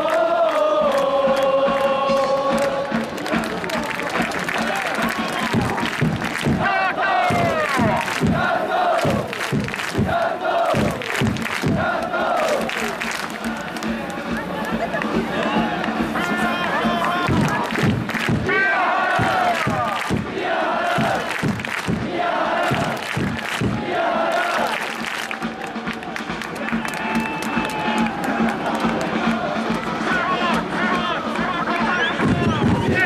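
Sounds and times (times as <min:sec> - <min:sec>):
football crowd chanting and shouting: 0:00.0 - 0:33.0
sharp beats: 0:02.0 - 0:31.6.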